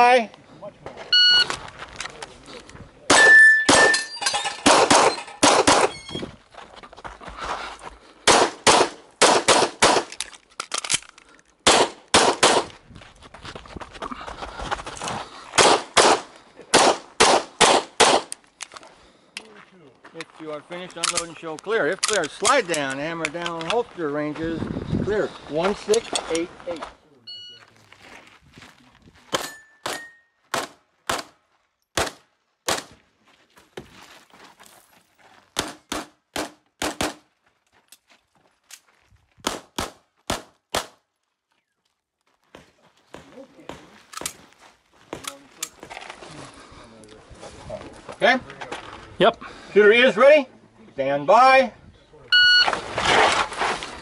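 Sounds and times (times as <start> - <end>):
pistol shots: 4.6 - 5.9, 8.3 - 10.1, 11.6 - 12.7, 15.6 - 18.3, 32.0 - 32.9, 35.6 - 37.2, 39.4 - 41.0.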